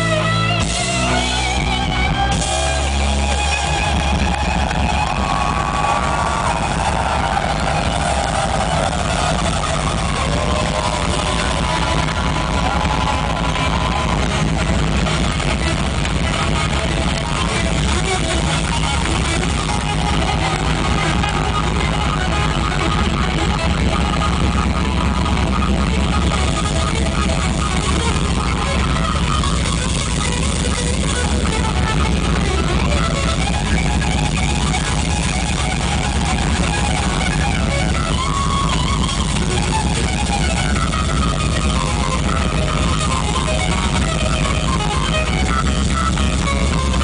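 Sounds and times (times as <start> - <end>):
electric guitar lead notes: 0.0 - 47.0
live rock band: 0.0 - 47.0.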